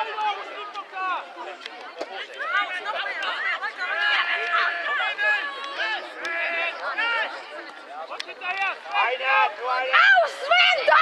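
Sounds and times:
young voices chattering: 0.0 - 11.0.

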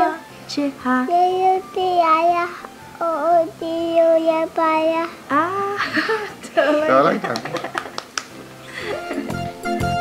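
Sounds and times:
boy singing into microphone: 0.0 - 5.7.

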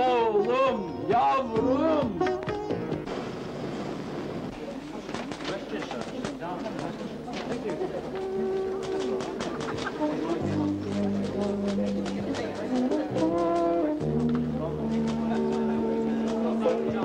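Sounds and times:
held music notes: 0.0 - 3.3, 7.8 - 17.0.

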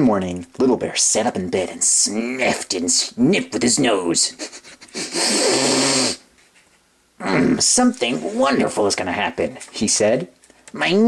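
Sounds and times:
person sniffing hard: 4.4 - 6.3.

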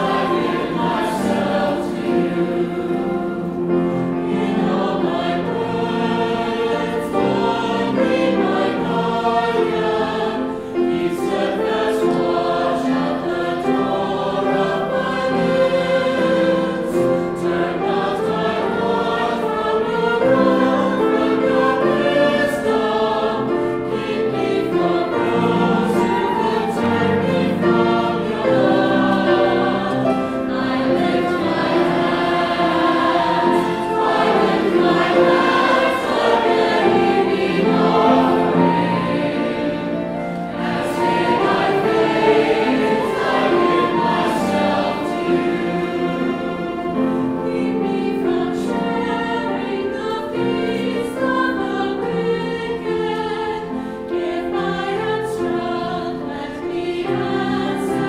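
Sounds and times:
mixed choir singing: 0.0 - 58.0
piano: 0.0 - 58.0
violin: 0.0 - 58.0.

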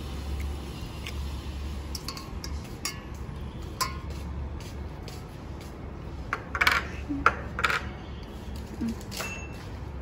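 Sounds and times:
metal tongs clinking on bowl: 1.9 - 3.1, 9.0 - 9.6.

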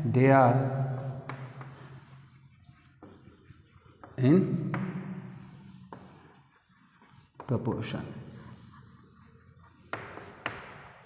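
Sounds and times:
chalk scratching on chalkboard: 1.0 - 10.7.

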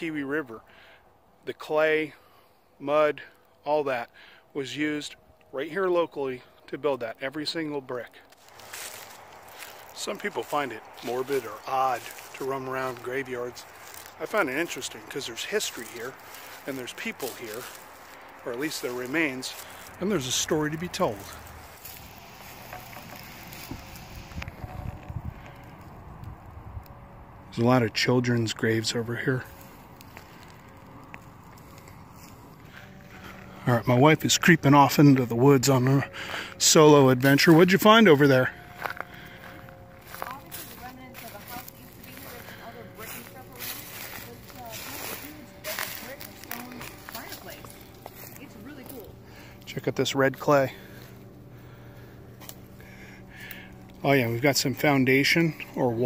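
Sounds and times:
faint steady hum: 0.0 - 56.0
footsteps crunching dry leaves: 8.2 - 56.0
wind buffeting microphone: 21.4 - 27.5.

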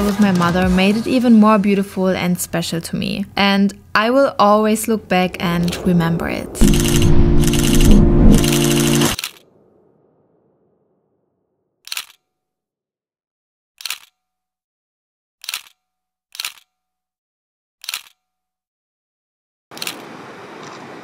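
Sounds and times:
background music: 4.0 - 9.2
sharp click sound effects: 6.6 - 9.4.

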